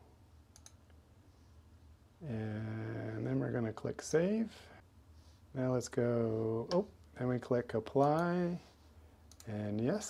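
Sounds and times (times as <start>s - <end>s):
faint computer mouse clicks: 0.5s - 0.9s.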